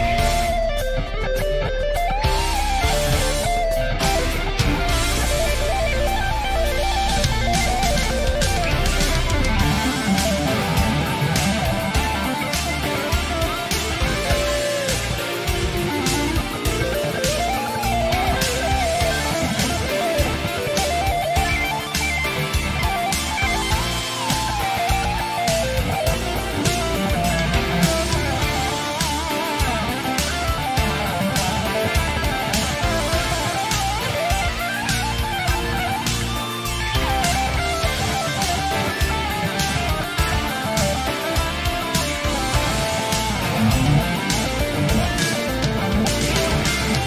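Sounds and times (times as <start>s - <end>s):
backing track drum beat: 0.0s - 47.0s
lead electric guitar runs: 0.0s - 47.0s.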